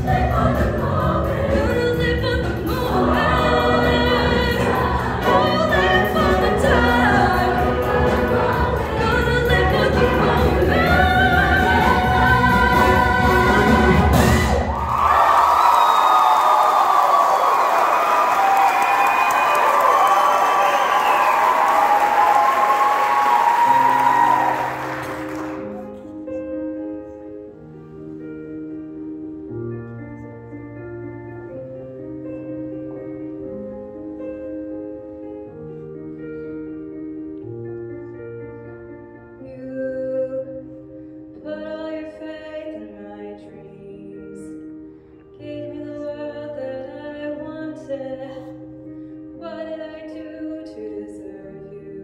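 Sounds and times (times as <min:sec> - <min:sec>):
choir singing with live band: 0:00.0 - 0:14.9
audience cheering and applauding: 0:14.6 - 0:25.9.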